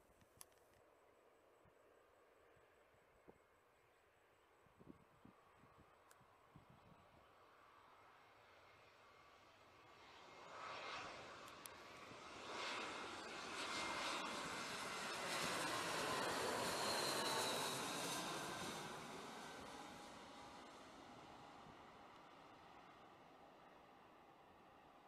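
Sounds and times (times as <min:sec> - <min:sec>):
jet airliner passing overhead: 0:06.6 - 0:25.0.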